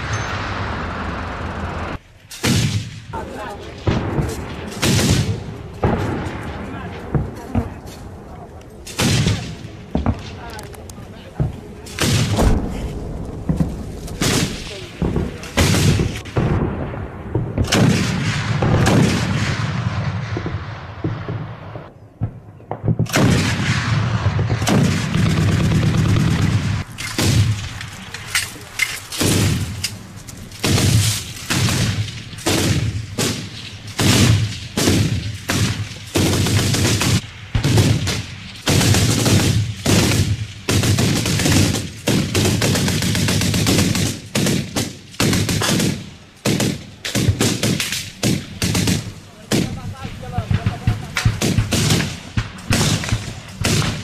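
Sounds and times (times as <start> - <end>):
automatic gunfire: 23.1 - 27.7, 30.6 - 54.0.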